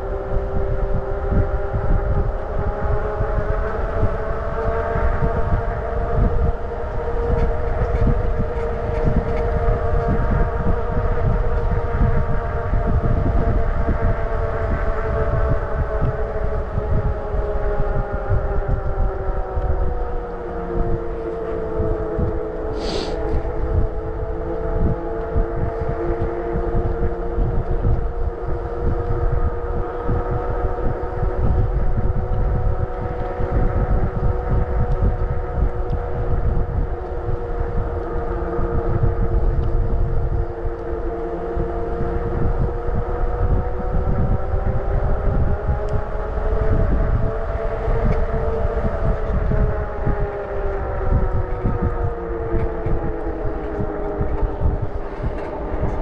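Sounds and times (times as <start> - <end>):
motorcycle engine cruising: 0.0 - 56.0
wind rumble on microphone: 0.0 - 56.0.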